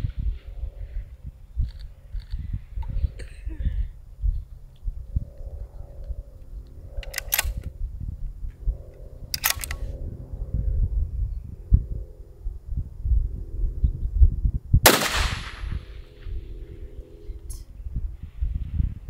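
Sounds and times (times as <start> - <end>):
low rumble: 0.0 - 19.0
short rattling clicks: 7.0 - 7.7, 9.3 - 9.8
rifle shot with echo: 14.8 - 16.3.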